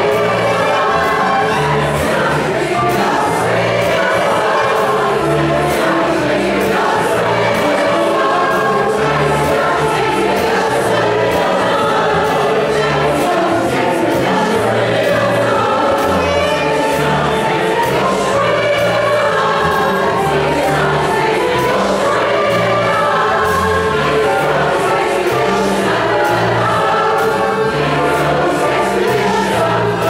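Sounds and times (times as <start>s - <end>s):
double bass line: 0.0s - 30.0s
mixed choir singing: 0.0s - 30.0s
piano: 0.0s - 30.0s.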